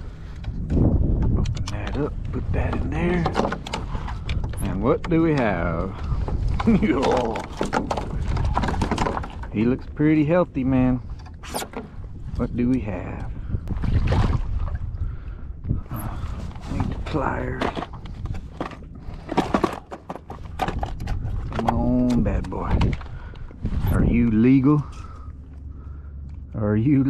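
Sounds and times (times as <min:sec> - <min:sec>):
wind rumble on microphone: 0:00.0 - 0:27.0
hand rummaging in plastic tray: 0:16.7 - 0:21.8.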